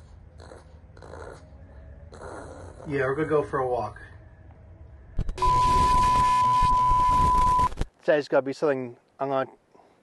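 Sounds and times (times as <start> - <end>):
tv static: 5.2 - 7.9.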